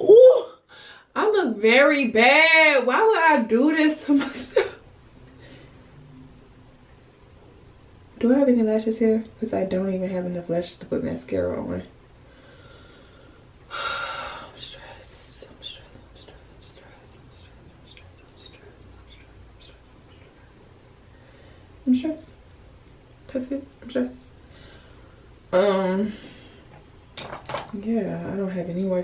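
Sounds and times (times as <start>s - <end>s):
woman talking: 0.0s - 4.8s, 8.2s - 11.9s, 21.8s - 22.4s, 23.3s - 24.4s, 25.5s - 26.2s, 27.7s - 29.0s
woman whispering: 14.3s - 20.6s.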